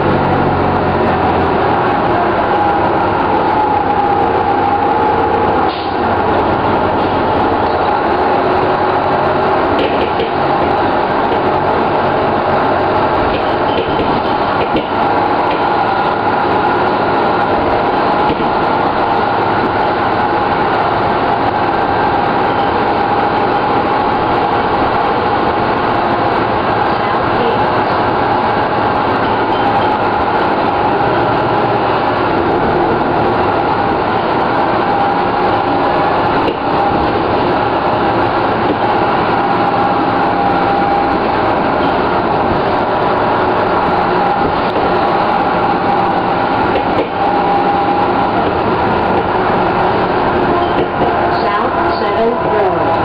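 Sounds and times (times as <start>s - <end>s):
diesel bus engine running: 0.0s - 53.0s.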